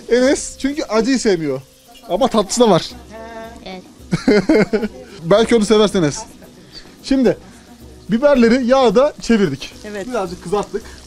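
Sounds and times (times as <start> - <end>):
people talking: 0.0 - 7.4, 8.1 - 11.0.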